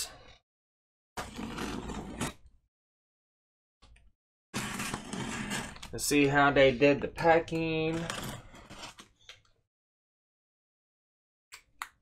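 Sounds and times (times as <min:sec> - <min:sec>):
hands scraping cardboard box: 0:01.2 - 0:02.4, 0:04.6 - 0:05.9.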